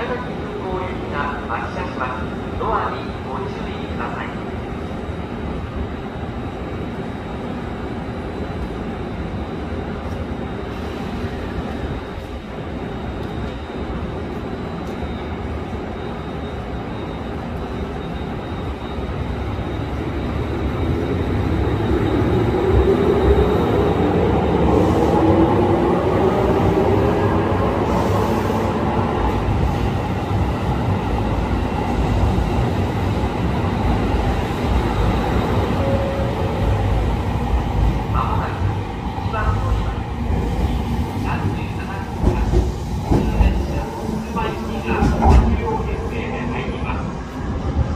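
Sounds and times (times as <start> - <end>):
electric train humming: 0.0 - 47.9.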